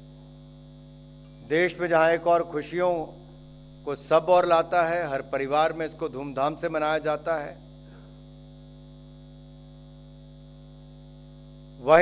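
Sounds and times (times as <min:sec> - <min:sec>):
electrical mains hum: 0:00.0 - 0:12.0
man's voice: 0:01.5 - 0:03.1, 0:03.9 - 0:07.6.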